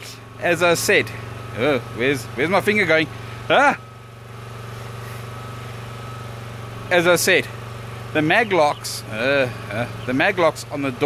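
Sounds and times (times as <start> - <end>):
generator engine humming: 0.0 - 11.0.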